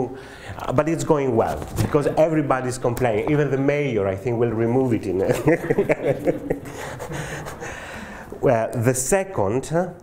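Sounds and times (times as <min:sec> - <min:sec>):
man speaking: 0:00.0 - 0:06.3, 0:08.4 - 0:10.0
audience laughing: 0:05.2 - 0:07.8.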